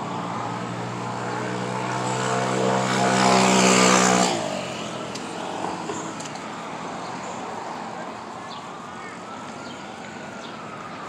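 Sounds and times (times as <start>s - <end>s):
vehicle engine passing by: 0.0s - 5.9s
quiet traffic noise: 0.0s - 11.0s.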